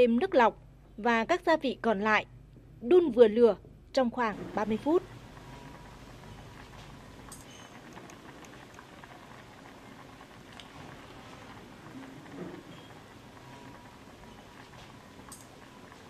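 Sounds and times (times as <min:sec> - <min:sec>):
broth bubbling in pot: 0:04.1 - 0:16.0.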